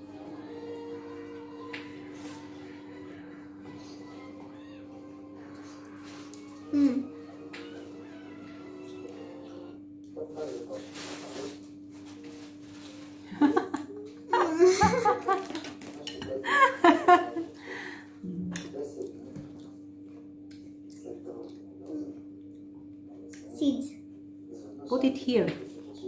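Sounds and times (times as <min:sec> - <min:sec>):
woman and girl laughing: 0:13.3 - 0:15.6, 0:16.5 - 0:17.5.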